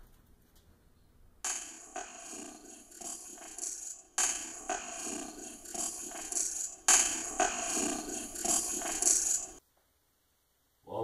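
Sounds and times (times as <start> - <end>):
hissing recorder noise: 1.4 - 9.6.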